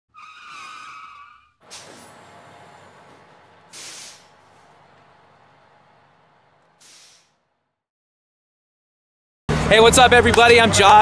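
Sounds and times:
cartoon tyre screech: 0.1s - 2.2s
short burst of hiss: 1.7s - 2.2s, 3.7s - 4.4s, 6.8s - 7.4s.

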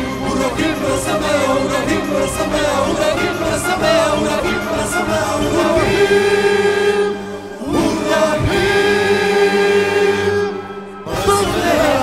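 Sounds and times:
backing music: 0.0s - 12.0s
singers holding long notes: 0.0s - 12.0s.

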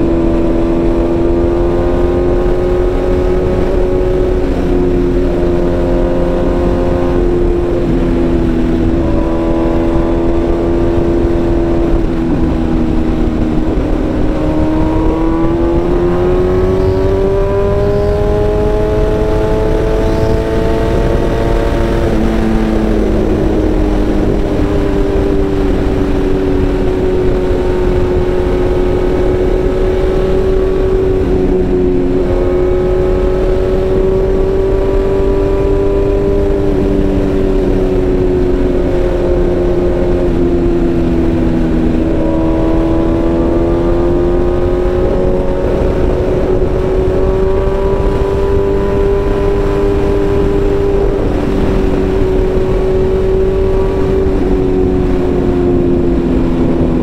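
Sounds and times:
motorcycle engine revving: 0.0s - 57.0s
wind noise: 0.0s - 57.0s.

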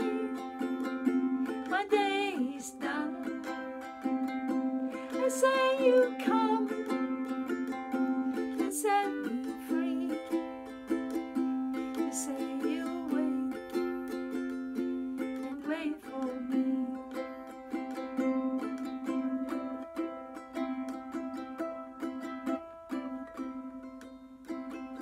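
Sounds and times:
ukulele strumming chords: 0.0s - 25.0s.

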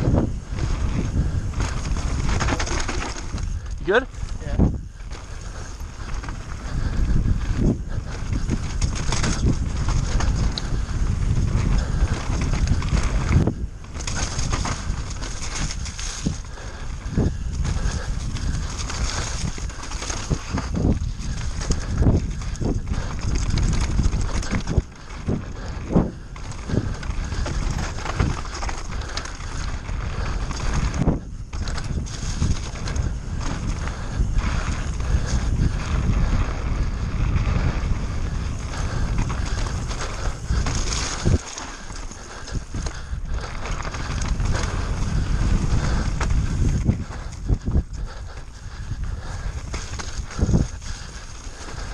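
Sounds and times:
bike frame rattling: 0.0s - 51.9s
tyres rolling and skidding on mud: 0.0s - 51.9s
wind buffeting microphone: 0.0s - 51.9s
bike knocking over bumps: 38.8s - 47.8s.

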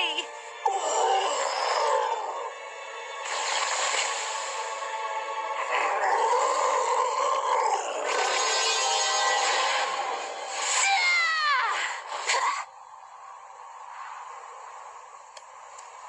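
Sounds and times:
background music: 0.0s - 16.0s
low moan: 0.6s - 2.5s
cartoon monster roaring: 0.7s - 2.5s, 5.6s - 8.8s.

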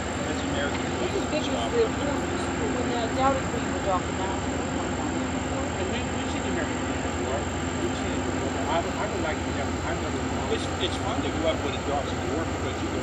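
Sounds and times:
diesel engines droning: 0.0s - 13.0s
faint conversation: 0.0s - 13.0s.

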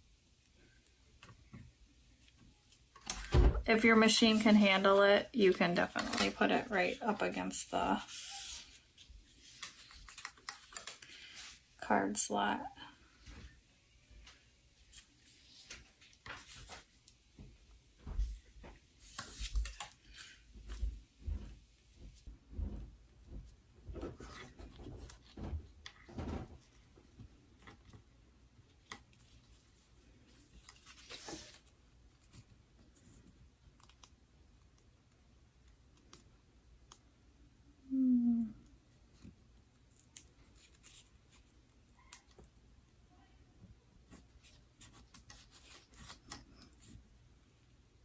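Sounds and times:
vinyl and tape rustling: 1.1s - 11.6s, 14.2s - 28.2s.

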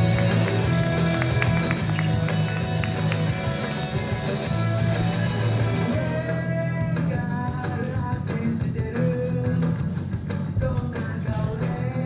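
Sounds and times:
electric guitars: 0.0s - 12.0s
sustained bass notes: 0.0s - 12.0s
drum kit and cymbals: 5.0s - 12.0s.

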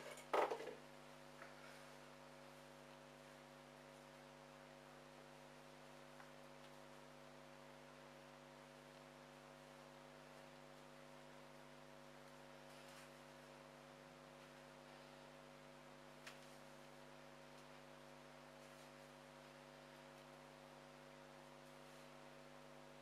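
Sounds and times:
low electrical hum: 0.0s - 23.0s.

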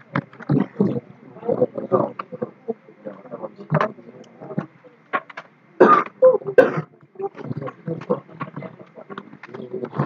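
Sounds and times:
throat-like vocal noises: 0.0s - 4.7s, 5.8s - 10.0s
mumbled talk: 0.0s - 10.0s.

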